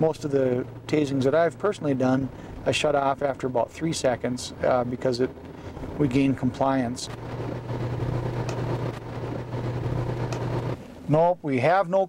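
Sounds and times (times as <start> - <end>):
car engine hum: 0.0 - 11.8
road noise: 0.0 - 11.8.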